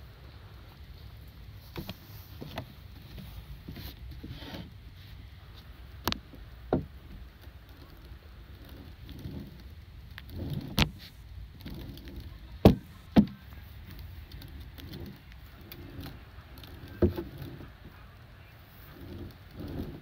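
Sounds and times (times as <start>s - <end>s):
balance board rolling rumble: 0.0s - 20.0s
wooden knocks: 11.7s - 17.9s.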